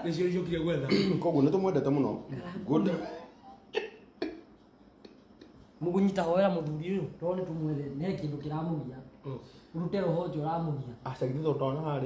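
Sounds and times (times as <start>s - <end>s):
man coughing: 0.8s - 1.4s.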